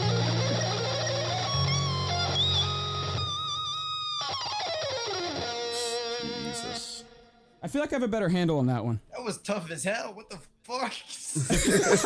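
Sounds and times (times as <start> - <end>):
electric guitar lead: 0.0 - 7.6.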